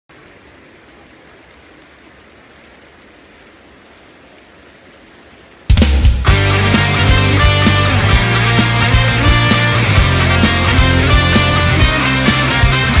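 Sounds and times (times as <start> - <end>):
rock band playing: 5.7 - 13.0.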